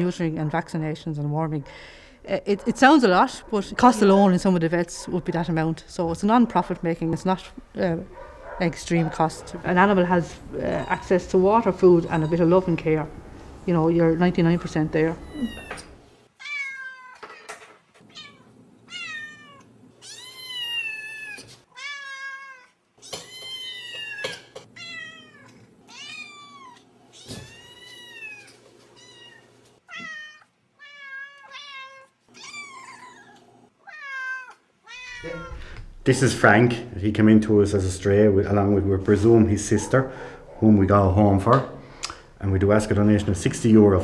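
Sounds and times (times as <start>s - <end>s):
cat meowing: 15.2s - 17.4s, 18.0s - 35.6s.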